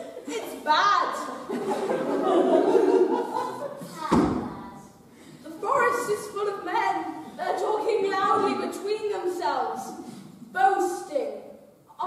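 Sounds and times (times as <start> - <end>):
heavy thump echoing: 3.9 - 4.7.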